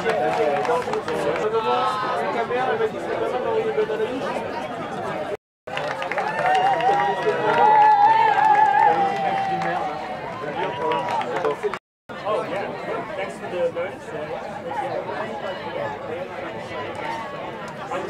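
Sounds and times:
many voices talking and calling: 7.0 - 18.0.

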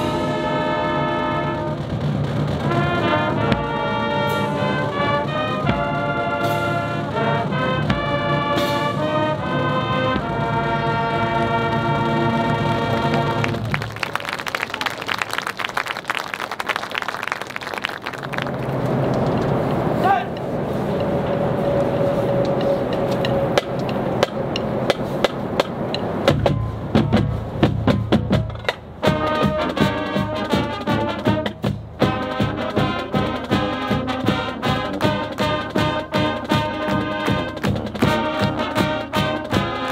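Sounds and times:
brass band chord: 0.0 - 13.7, 29.0 - 39.9
band winds playing: 0.0 - 39.9
crowd applause and cheering: 11.0 - 19.9
bass drums and snares beat: 22.3 - 39.8.

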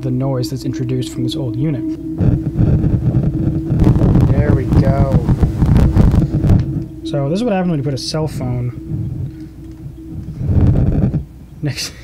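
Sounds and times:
radio interference buzzing: 1.0 - 11.6.

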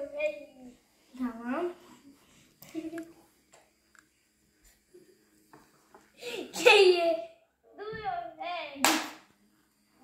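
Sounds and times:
sharp smack: 8.8 - 9.3.

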